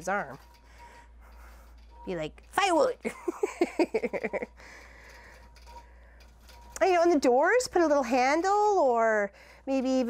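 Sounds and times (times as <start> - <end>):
woman laughing: 3.0 - 4.6.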